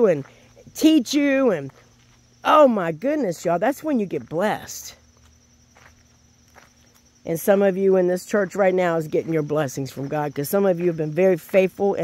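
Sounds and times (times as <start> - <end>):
soft footsteps: 0.0 - 2.4, 3.4 - 12.0.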